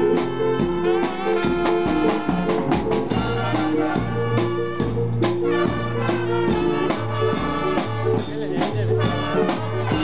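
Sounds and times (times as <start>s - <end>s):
drum kit strikes: 0.0s - 10.0s
wind band brass playing: 0.0s - 10.0s.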